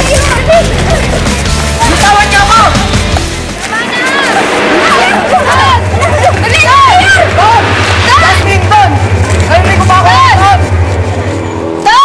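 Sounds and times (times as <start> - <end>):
steady low drone: 2.6 - 11.8.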